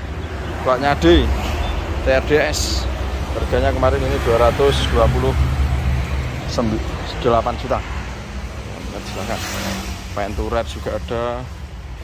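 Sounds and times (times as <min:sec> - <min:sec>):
man speaking: 0:00.6 - 0:01.4, 0:02.0 - 0:05.6, 0:06.4 - 0:08.0, 0:08.7 - 0:11.6.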